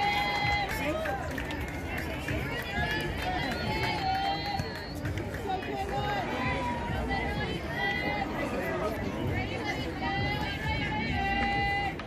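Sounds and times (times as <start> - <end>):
crowd chatter and calling out: 0.0 - 12.0.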